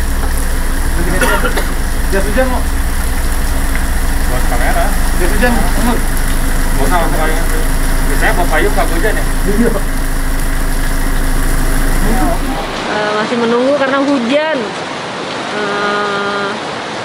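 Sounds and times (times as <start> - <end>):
vehicle engine idling: 0.0 - 13.4.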